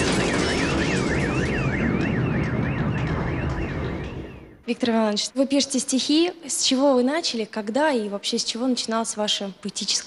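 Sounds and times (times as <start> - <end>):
electronic alarm siren: 0.0 - 4.6.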